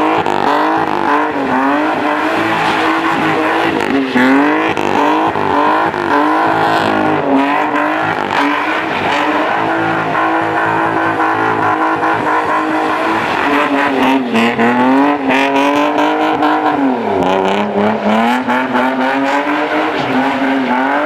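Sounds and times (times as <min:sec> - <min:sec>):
car engine revving: 0:00.0 - 0:21.0
tyres squealing on asphalt: 0:00.0 - 0:21.0.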